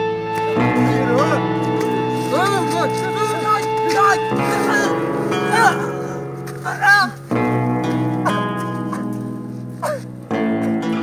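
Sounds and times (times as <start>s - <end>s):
sustained guitar chords: 0.0s - 11.0s
short wordless voice sounds: 2.2s - 7.3s.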